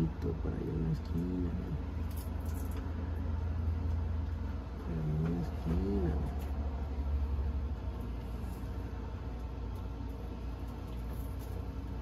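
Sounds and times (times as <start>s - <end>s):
low mechanical hum: 0.0s - 12.0s
person humming: 4.9s - 6.4s.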